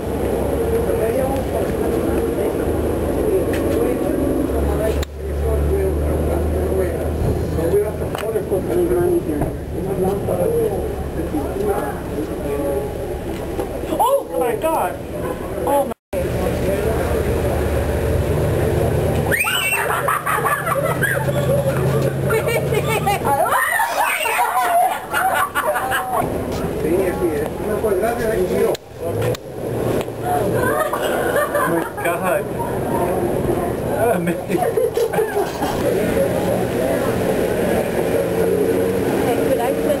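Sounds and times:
faint voices: 0.0 - 40.0
street traffic engine rumble: 0.0 - 40.0
people exclaiming and talking: 0.8 - 16.0, 19.2 - 29.4, 30.0 - 40.0.

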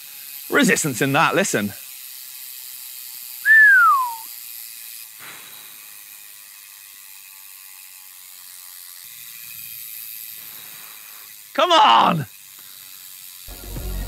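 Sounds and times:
bicycle freehub ticking: 0.0 - 13.5
whistle falling in pitch: 3.5 - 4.2.

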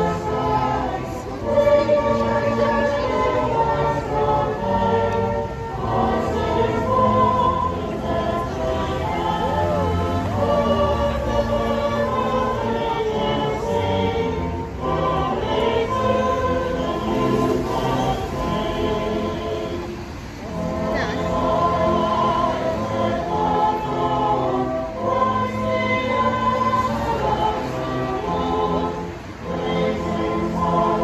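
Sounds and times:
choir singing held chords: 0.0 - 31.0.

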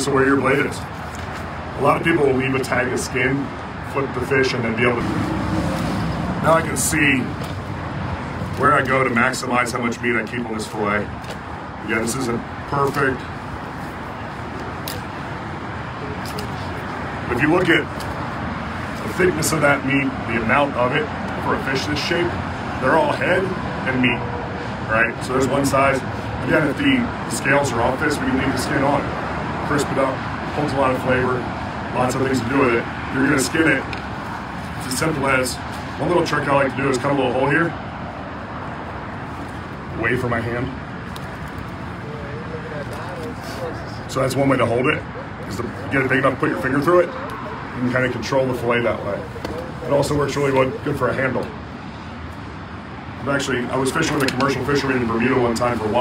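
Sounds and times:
outdoor background noise: 0.0 - 56.0
faint background voices: 41.9 - 51.7.

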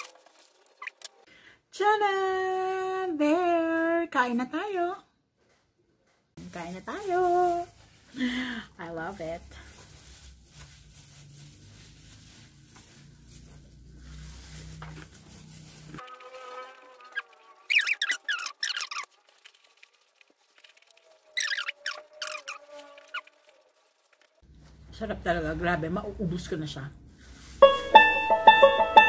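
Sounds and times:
high-pitched squeaks and chirps: 0.8 - 1.2, 17.0 - 19.2, 20.8 - 23.6.

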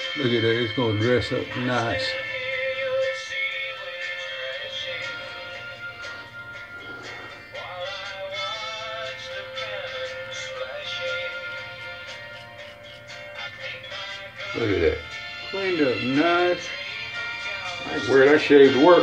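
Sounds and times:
music with singing: 0.0 - 19.0.

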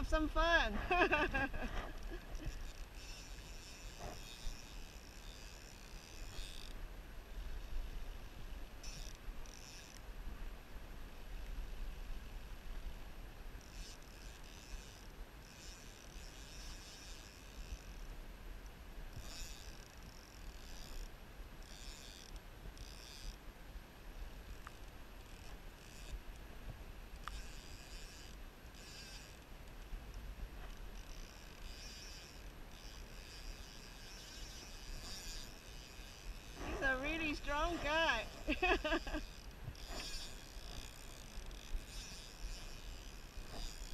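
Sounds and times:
fishing reel clicker ticking: 1.9 - 6.8, 8.8 - 10.1, 13.6 - 23.4, 24.4 - 26.4, 27.1 - 43.9.

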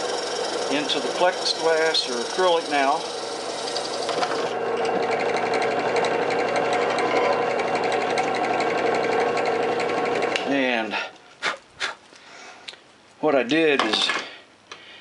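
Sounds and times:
drill press motor hum: 0.0 - 10.5.

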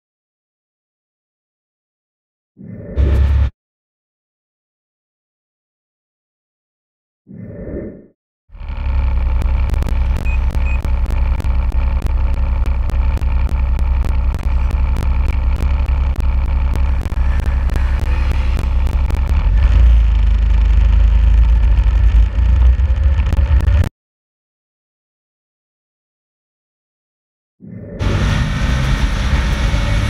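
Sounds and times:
snowmobile engine running: 8.5 - 23.9, 28.0 - 30.0.

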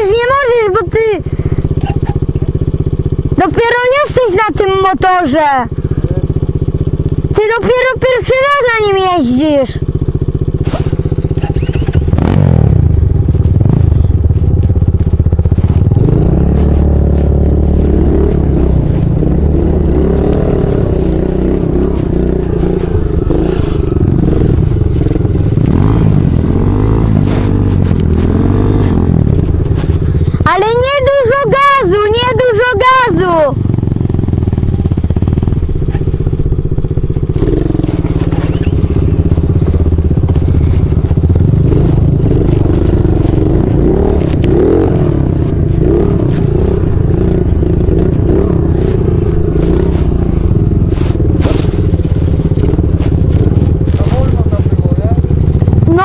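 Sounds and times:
dirt bike engine running: 0.0 - 56.0.

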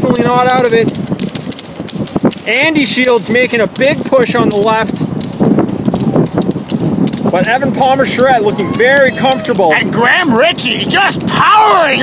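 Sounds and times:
ski pole tips clicking on asphalt: 0.0 - 9.8
low rumble: 0.0 - 11.0.

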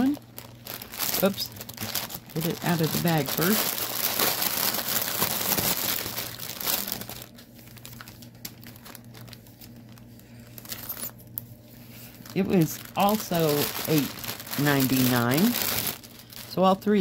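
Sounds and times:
plastic bag crinkling: 0.0 - 17.0.

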